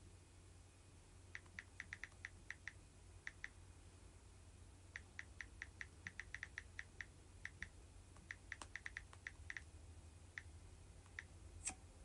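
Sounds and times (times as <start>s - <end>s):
fingernails tapping touchscreen: 5.0s - 9.7s.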